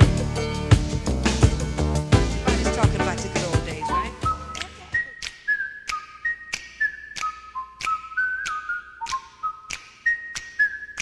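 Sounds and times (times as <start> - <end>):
drum beat: 0.0 - 5.1
whistled melody: 3.4 - 11.0.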